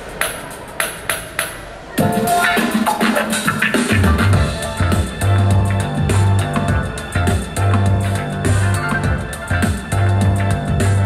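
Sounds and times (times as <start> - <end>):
murmur of crowd voices: 0.0 - 11.0
pop song over loudspeakers: 2.0 - 11.0.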